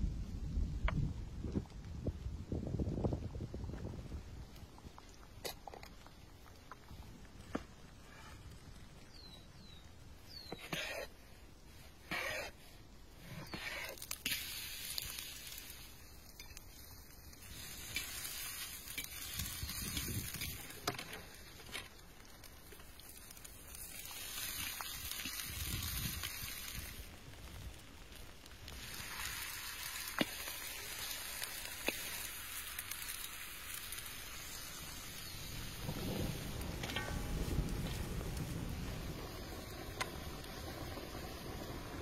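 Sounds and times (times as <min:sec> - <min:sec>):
fire crackling: 0:00.0 - 0:42.0
stirring scrape in pan: 0:10.5 - 0:11.1, 0:12.0 - 0:14.2
oil sizzling in a pan: 0:13.5 - 0:42.0.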